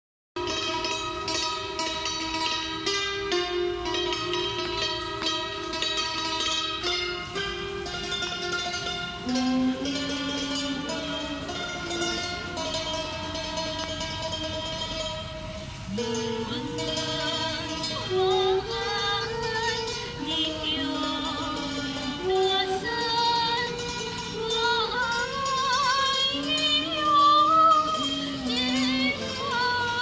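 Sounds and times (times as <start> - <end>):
hammered dulcimer melody: 0.4 - 30.0.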